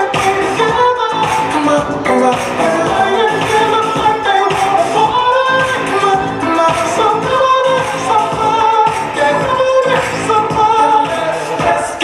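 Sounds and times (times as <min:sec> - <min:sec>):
pop song with singing and beat: 0:00.0 - 0:12.0.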